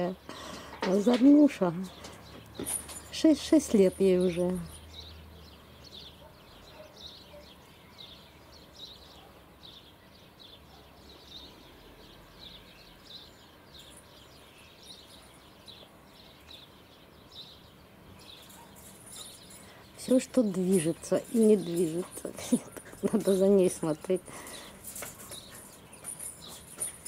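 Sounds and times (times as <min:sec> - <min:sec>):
quiet garden ambience: 0:00.0 - 0:27.0
small bird chirping: 0:00.4 - 0:27.0.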